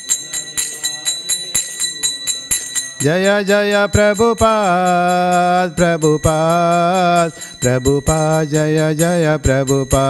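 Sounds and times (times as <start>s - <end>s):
chanting: 0.0s - 10.0s
small hand cymbals struck: 0.0s - 10.0s.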